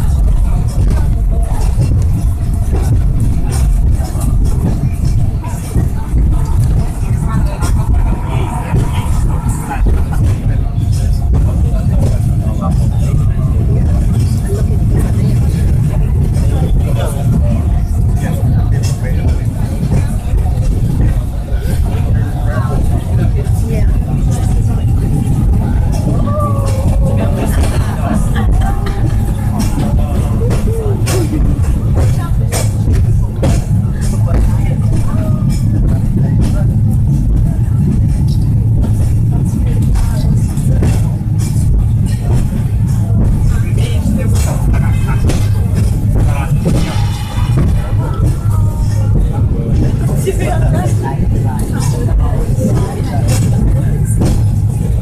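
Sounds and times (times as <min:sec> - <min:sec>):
faint voices: 0:00.0 - 0:55.0
tram car rumbling: 0:00.0 - 0:55.0.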